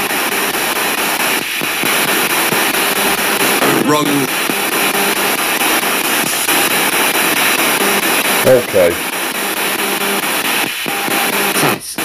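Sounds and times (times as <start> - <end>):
choppy radio static hiss: 0.0 - 12.0
faint broadcast tones: 0.0 - 12.0.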